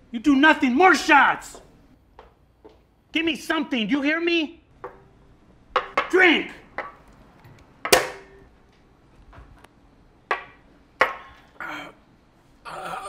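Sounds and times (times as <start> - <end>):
shot glasses knocking on table: 5.8 - 6.2.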